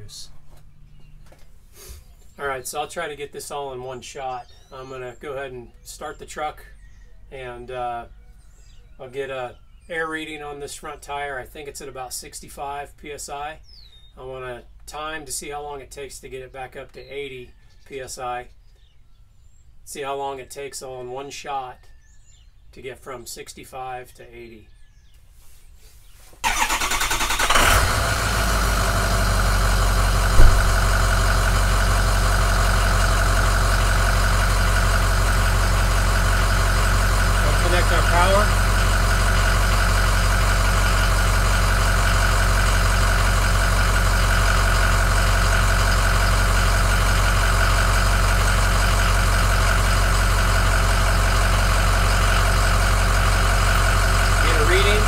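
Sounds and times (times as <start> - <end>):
pickup engine starting and idling: 26.4 - 55.0
sharp knock: 30.3 - 31.1.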